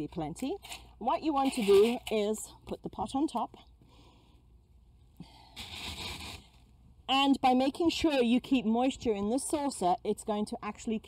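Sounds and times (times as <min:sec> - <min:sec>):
gritty scrape on gravel: 0:00.6 - 0:02.2, 0:05.6 - 0:06.6.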